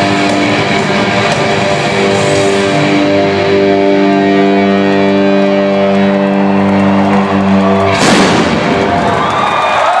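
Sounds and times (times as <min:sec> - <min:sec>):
sustained electric guitar chord: 0:00.0 - 0:08.7
crowd cheering: 0:00.0 - 0:10.0
loud cymbal crash: 0:08.0 - 0:08.9.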